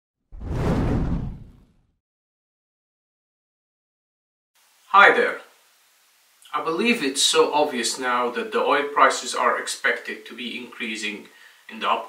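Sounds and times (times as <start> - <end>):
whoosh with low rumble: 0.4 - 1.8.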